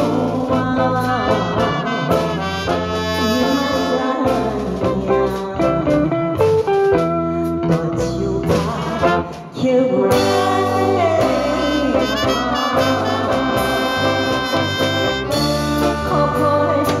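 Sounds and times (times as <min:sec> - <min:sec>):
woman singing ballad: 0:00.0 - 0:14.3, 0:15.7 - 0:17.0
live band playing: 0:00.0 - 0:17.0.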